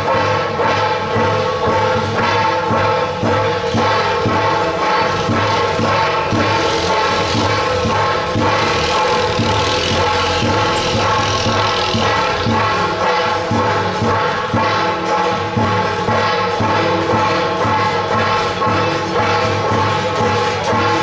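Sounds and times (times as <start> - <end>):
brass hand cymbals: 0.0 - 21.0
sustained melody notes: 4.6 - 13.0.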